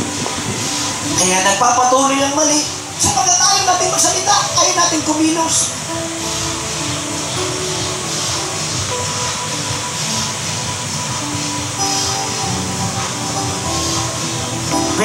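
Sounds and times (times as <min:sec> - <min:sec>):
sustained background music chords: 0:00.0 - 0:15.0.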